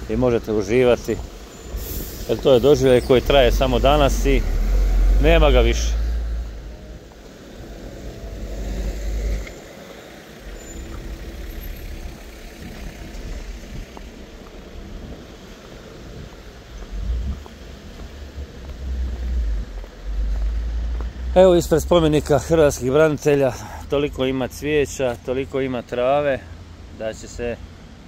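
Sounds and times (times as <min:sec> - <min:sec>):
noisy street background: 0:00.0 - 0:28.0
van driving past: 0:00.7 - 0:23.4
low rumble: 0:10.5 - 0:21.0.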